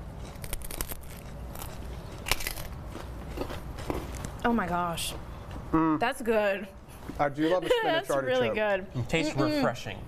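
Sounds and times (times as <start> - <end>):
chips crunching while chewed: 0.0 - 4.4.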